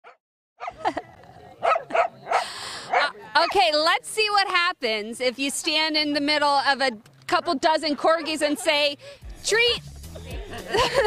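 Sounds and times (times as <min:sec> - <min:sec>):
dogs barking: 0:00.0 - 0:03.6.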